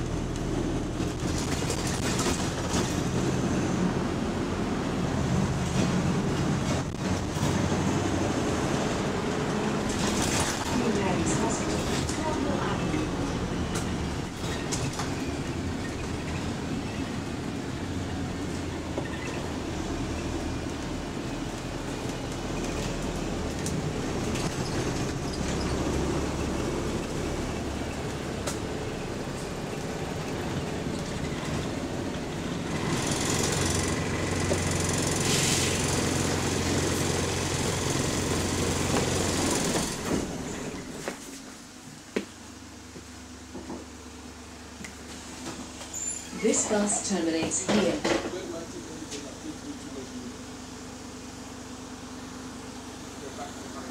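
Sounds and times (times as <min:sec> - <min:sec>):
bus engine drone: 0:00.0 - 0:53.9
road noise: 0:00.0 - 0:53.9.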